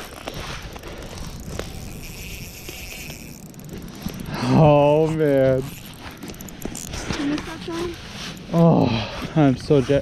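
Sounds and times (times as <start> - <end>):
fishing reel clicks: 0.0 - 8.6
fishing reel whirring: 0.0 - 10.0.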